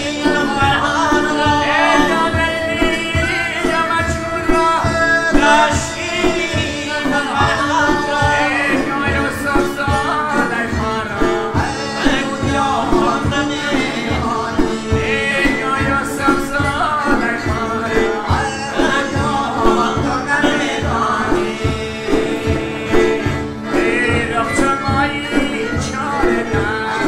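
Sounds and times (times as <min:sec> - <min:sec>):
harmonium: 0:00.0 - 0:27.0
man singing: 0:00.0 - 0:27.0
plucked lutes: 0:00.0 - 0:27.0.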